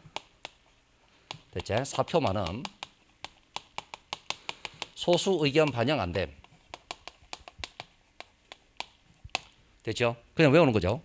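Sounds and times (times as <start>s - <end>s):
chalk tapping on chalkboard: 0.0s - 9.5s.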